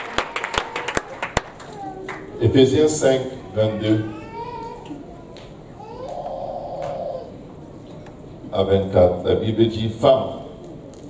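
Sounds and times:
baby crying: 3.2 - 7.5.

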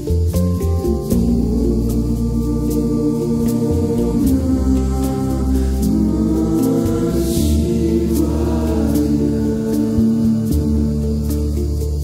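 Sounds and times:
low droning tones: 0.0 - 12.0
choir-like voices: 0.9 - 12.0.

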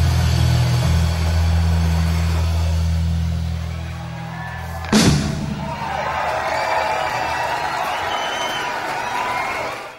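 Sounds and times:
rock band holding low chord: 0.0 - 6.0.

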